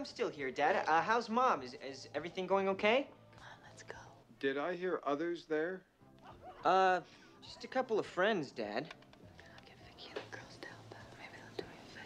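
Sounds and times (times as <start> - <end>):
woman whispering: 3.4 - 4.3, 9.3 - 12.0.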